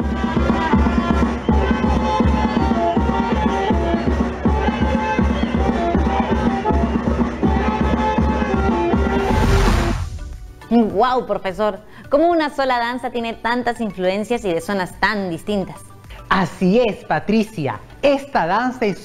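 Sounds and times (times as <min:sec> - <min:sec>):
band playing dance music: 0:00.0 - 0:10.6
bass drum beating: 0:08.8 - 0:10.7
rising swoosh: 0:09.0 - 0:10.7.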